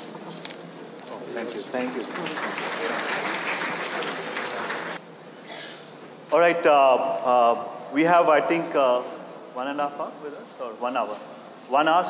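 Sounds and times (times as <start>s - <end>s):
audience applauding: 1.4s - 5.0s.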